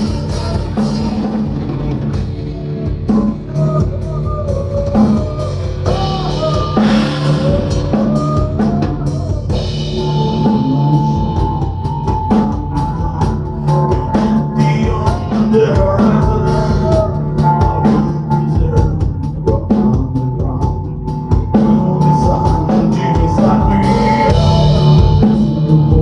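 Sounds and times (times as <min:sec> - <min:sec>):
heavy metal band playing: 0:00.0 - 0:26.0
high bending melody line: 0:00.0 - 0:26.0
pounding drum kit: 0:00.0 - 0:26.0.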